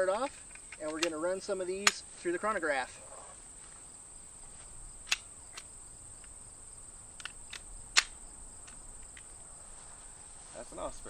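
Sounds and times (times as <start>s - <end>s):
crickets chirring: 0.0s - 11.0s
pistol clicks: 0.2s - 1.2s, 1.8s - 2.0s, 5.0s - 6.4s, 7.2s - 9.3s.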